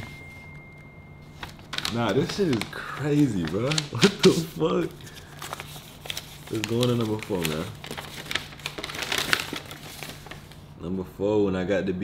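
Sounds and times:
high-pitched steady tone: 0.0s - 1.6s
low room hum: 0.0s - 12.0s
paper sheet crackling: 1.2s - 10.7s.

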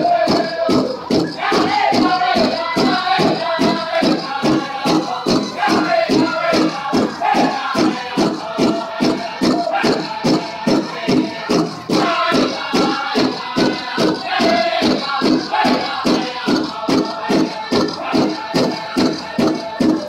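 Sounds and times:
large drum beating: 0.0s - 20.0s
singers singing: 0.0s - 20.0s.

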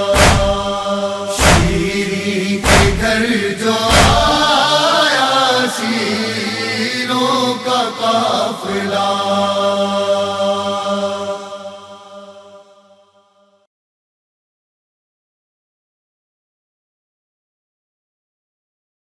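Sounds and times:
chest-beating thump: 0.0s - 2.0s, 2.6s - 3.2s, 3.9s - 4.4s
man chanting mournfully: 0.0s - 11.3s.

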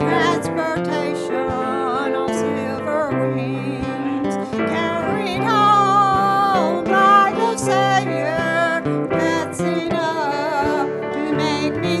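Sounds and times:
instrumental accompaniment: 0.0s - 12.0s
woman singing gospel song: 0.0s - 12.0s.

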